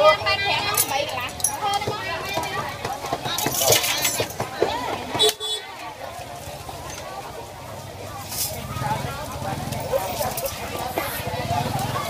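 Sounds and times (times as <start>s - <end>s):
market chatter: 0.0s - 12.0s.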